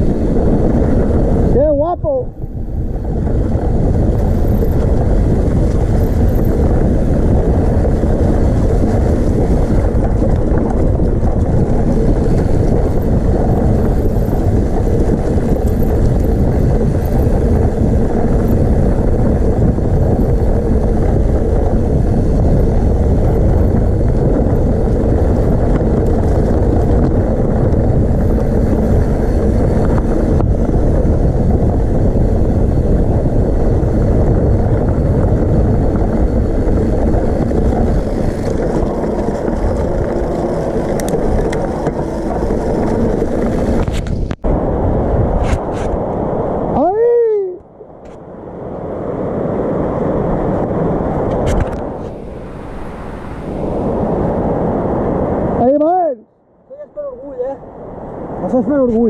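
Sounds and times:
bike tyres rolling on gravel: 0.0s - 1.7s, 2.3s - 46.8s
wind rushing over microphone: 0.0s - 59.0s.

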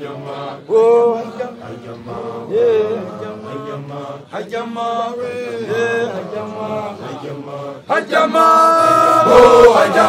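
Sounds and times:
men chanting a song: 0.0s - 10.0s.

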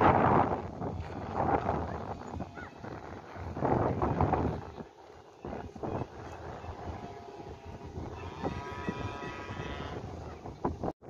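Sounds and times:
gusty wind buffeting microphone: 0.0s - 11.0s.

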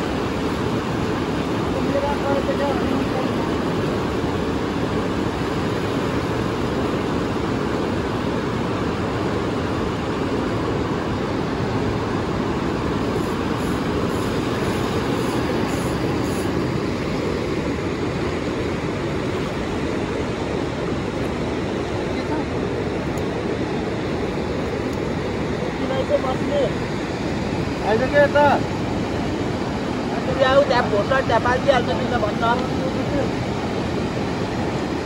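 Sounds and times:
fast-flowing river rushing: 0.0s - 35.0s.

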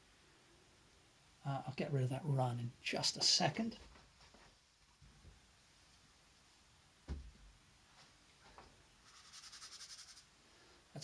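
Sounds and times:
brush scrubbing on paper: 9.0s - 10.3s.

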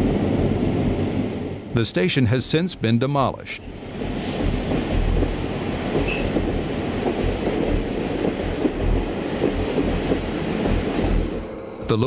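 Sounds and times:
train rumbling past: 0.0s - 12.0s
wheels clicking on rails: 3.9s - 12.0s
high wheel squeal: 6.0s - 6.4s.

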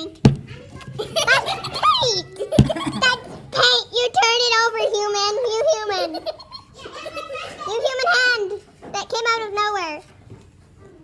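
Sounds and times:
child laughing: 0.8s - 3.8s, 4.8s - 8.6s.

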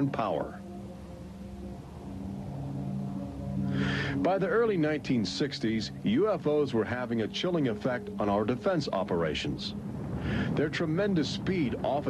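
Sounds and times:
low drone of held tones: 0.0s - 12.0s.

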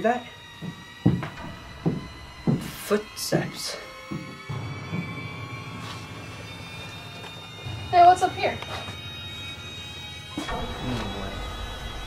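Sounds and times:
eerie horror background music: 0.0s - 12.0s
soft low thumps: 0.5s - 5.4s.

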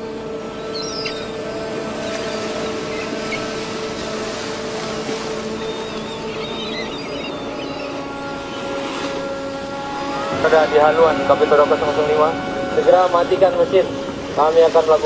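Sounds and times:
boat engine droning: 0.0s - 15.0s
sea noise hiss: 0.0s - 15.0s.

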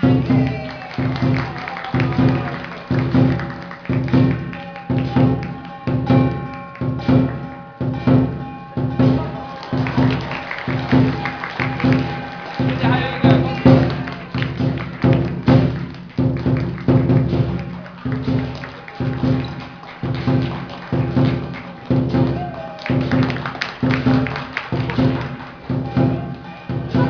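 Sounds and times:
cymbals ringing: 0.0s - 16.0s, 16.6s - 27.0s
large drum beating: 0.0s - 27.0s.

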